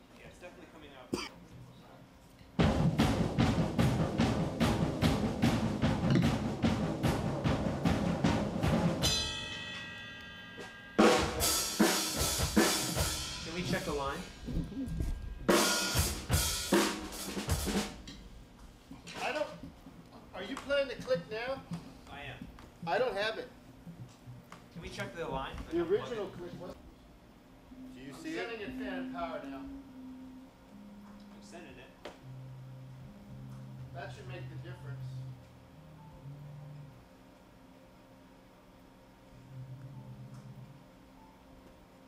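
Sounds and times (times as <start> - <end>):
drum kit with cymbals: 2.6 - 18.3.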